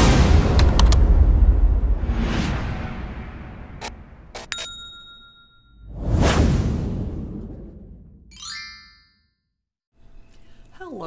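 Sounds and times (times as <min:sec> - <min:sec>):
loud whoosh: 0:00.0 - 0:04.3, 0:05.8 - 0:08.3
bright ding: 0:04.5 - 0:05.8.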